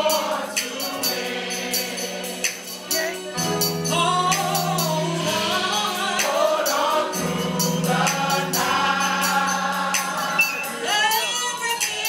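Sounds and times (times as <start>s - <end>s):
drums and cymbals: 0.0s - 12.0s
gospel choir singing: 0.0s - 12.0s
organ and keyboard: 0.0s - 12.0s.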